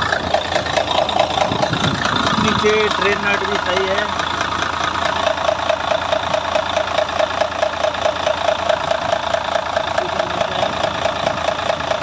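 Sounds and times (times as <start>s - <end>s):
diesel truck engine idling: 0.0s - 12.0s.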